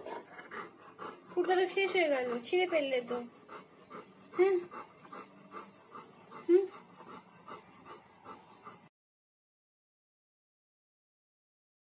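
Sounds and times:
dog panting: 0.0s - 8.9s
dog whimper: 6.3s - 6.8s.

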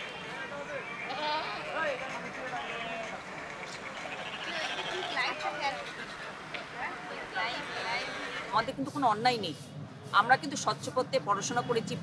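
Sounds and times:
goats bleating: 0.0s - 1.8s, 4.1s - 5.6s.

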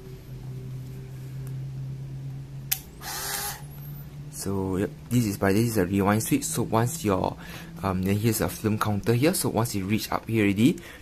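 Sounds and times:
steady low hum: 0.0s - 11.0s
camera motor drive whir: 2.7s - 4.0s
flash recharging whine: 2.7s - 4.1s.

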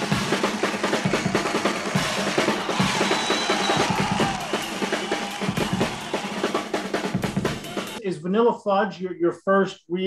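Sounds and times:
rock drum kit rolls: 0.0s - 8.0s.

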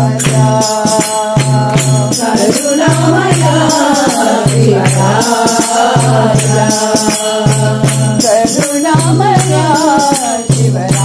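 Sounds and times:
people singing devotional song: 0.0s - 11.0s
percussion strikes: 0.0s - 11.0s.

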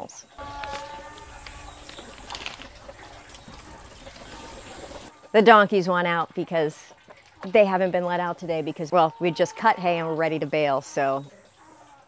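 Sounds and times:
donkeys braying: 0.0s - 12.0s.

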